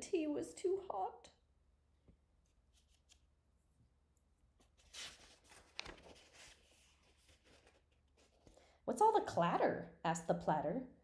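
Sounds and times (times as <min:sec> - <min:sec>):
paper page being turned: 0:02.4 - 0:03.3, 0:04.6 - 0:08.5
paper page snapping: 0:04.8 - 0:06.6.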